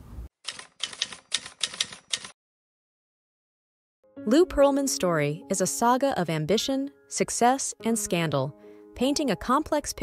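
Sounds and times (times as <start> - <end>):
typewriter key clacks: 0.4 - 2.4.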